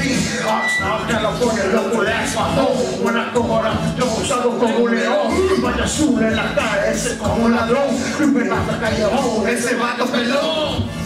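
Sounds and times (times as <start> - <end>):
hip hop backing track: 0.0 - 11.0
man rapping into microphone: 0.0 - 11.0.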